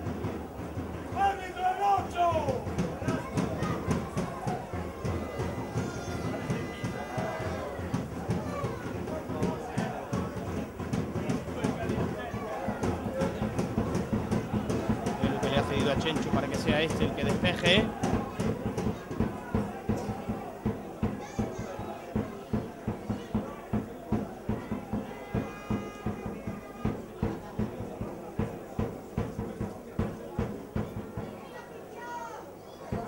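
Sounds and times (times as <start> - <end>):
background murmur: 0.0 - 33.0
people calling and shouting: 0.0 - 33.0.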